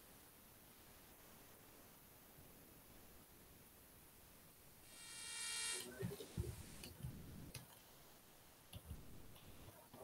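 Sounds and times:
buzzy electronic tone: 0:04.9 - 0:06.9.

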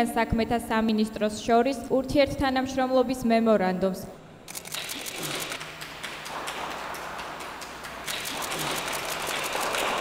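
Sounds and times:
camera shutters clicking rapidly: 0:04.5 - 0:05.7, 0:08.0 - 0:10.0.

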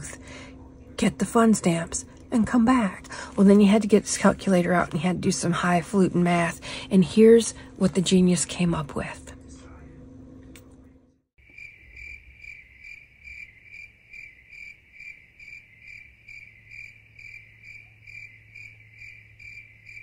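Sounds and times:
faint steady hum: 0:00.0 - 0:20.0
crickets chirping: 0:11.4 - 0:20.0.

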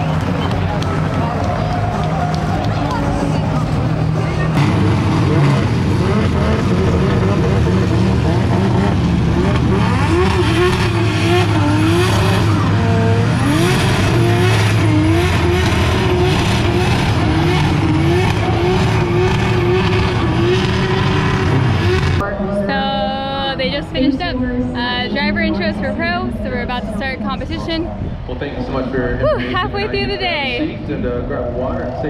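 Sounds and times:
car engines revving hard: 0:00.0 - 0:32.0.

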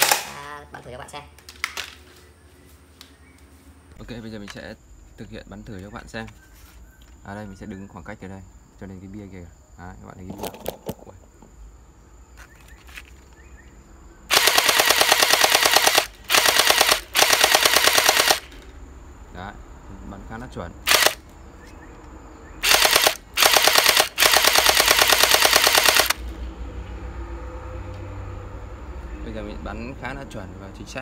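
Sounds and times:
toy blaster firing full auto: 0:00.0 - 0:00.4, 0:14.3 - 0:18.5, 0:20.9 - 0:21.2, 0:22.6 - 0:26.2.

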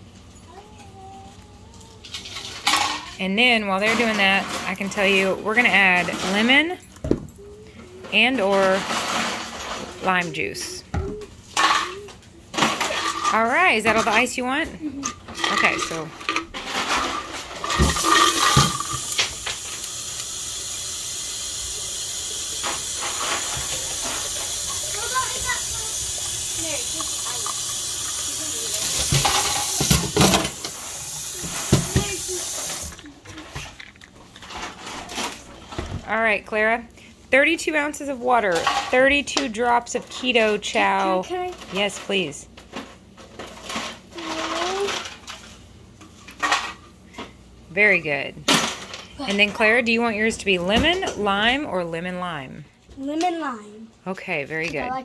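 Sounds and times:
faucet running into bottle: 0:17.8 - 0:33.0.

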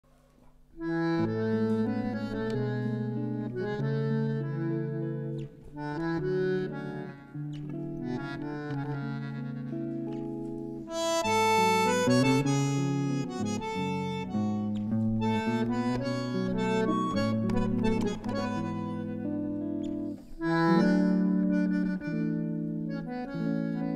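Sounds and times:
plucked guitar: 0:00.4 - 0:23.9
bandoneon chords: 0:00.7 - 0:23.9.

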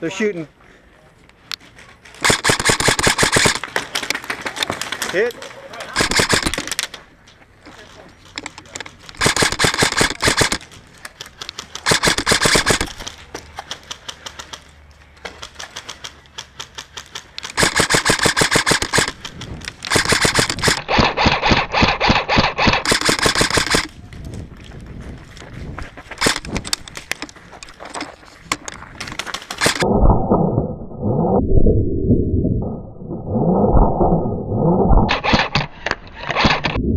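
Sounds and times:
airsoft rifles firing full auto: 0:02.2 - 0:05.1, 0:06.0 - 0:06.9, 0:09.1 - 0:10.7, 0:11.4 - 0:13.1, 0:15.5 - 0:23.9, 0:26.2 - 0:26.9, 0:29.6 - 0:29.8.

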